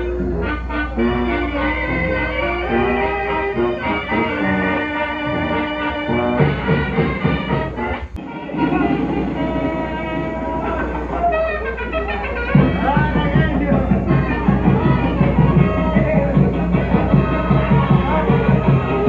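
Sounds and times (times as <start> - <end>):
brass band music: 0.0 - 19.0
steady bass beat: 0.0 - 19.0.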